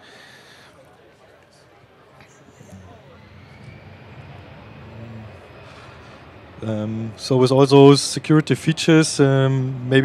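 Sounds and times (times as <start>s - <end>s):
low steady rumble: 2.3s - 10.0s.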